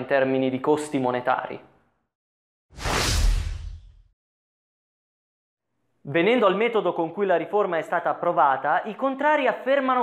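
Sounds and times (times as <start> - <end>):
whoosh sound effect: 2.8 - 4.1.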